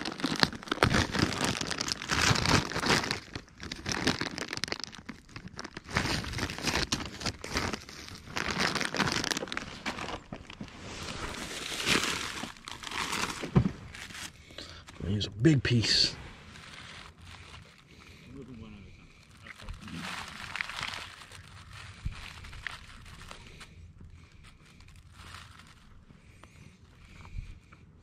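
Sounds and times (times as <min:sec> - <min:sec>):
plastic bag crinkling: 0:00.0 - 0:14.9, 0:15.7 - 0:26.6.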